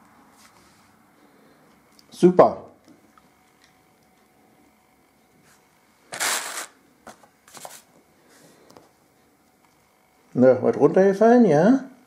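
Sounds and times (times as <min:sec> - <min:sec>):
packaging rustling: 0:06.1 - 0:07.9.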